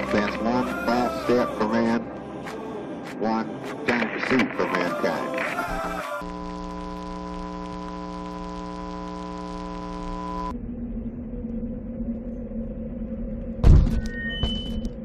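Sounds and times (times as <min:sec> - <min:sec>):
steady buzzing hum: 0:05.8 - 0:12.7
loud thud: 0:13.6 - 0:14.1.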